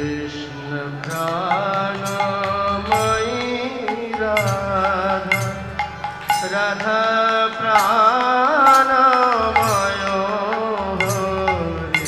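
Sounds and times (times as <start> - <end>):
harmonium chords: 0.0 - 12.0
man singing: 0.0 - 12.0
sharp percussion strikes: 0.0 - 12.0.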